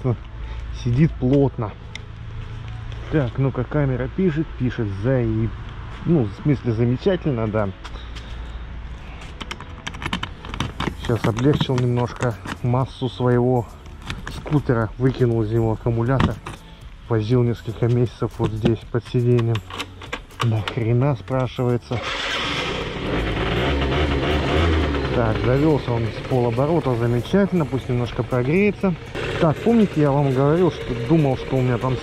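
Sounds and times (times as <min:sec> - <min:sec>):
scooter engine idling: 0:22.0 - 0:32.0.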